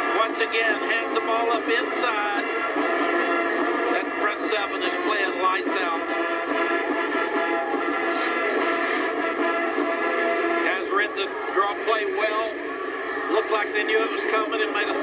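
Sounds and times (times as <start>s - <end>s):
music through tv speaker: 0.0s - 15.0s.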